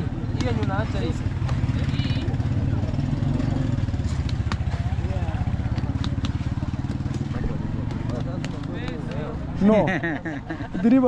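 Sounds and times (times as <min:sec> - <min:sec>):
sharp taps: 0:01.3 - 0:01.9, 0:04.1 - 0:09.4.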